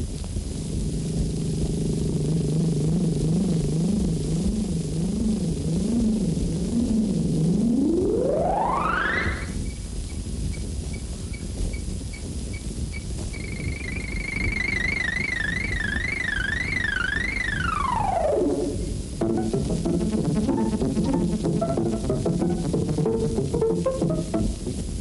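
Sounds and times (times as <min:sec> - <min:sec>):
steady hiss: 0:00.0 - 0:25.0
synthesizer tone sweeping and wobbling: 0:01.8 - 0:09.6, 0:13.4 - 0:24.6.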